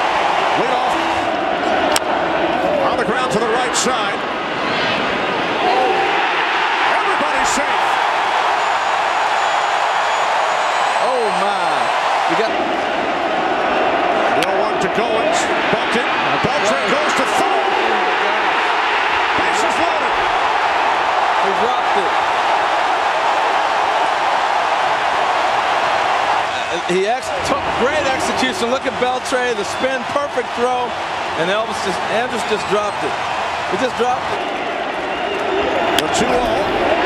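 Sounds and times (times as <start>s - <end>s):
stadium crowd cheering: 0.0s - 37.0s.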